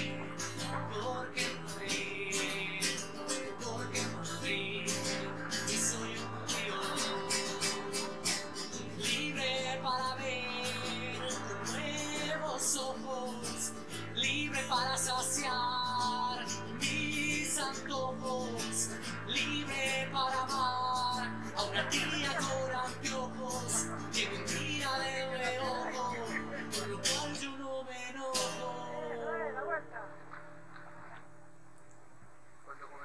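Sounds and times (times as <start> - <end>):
strummed acoustic guitar music: 0.0 - 31.5.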